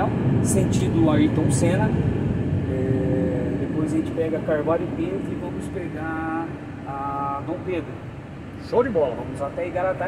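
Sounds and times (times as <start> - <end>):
man speaking: 0.0 - 2.0, 2.6 - 8.0, 8.6 - 10.0
truck engine and road noise: 0.0 - 10.0.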